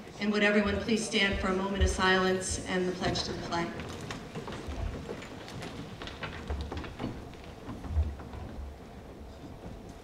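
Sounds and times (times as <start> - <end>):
people rustling and shuffling: 0.0 - 10.0
chairs clattering: 3.0 - 10.0.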